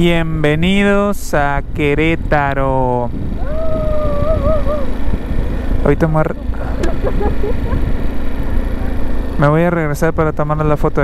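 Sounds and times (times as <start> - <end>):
road and wind rumble: 0.0 - 11.0
motorcycle engine running: 1.8 - 11.0.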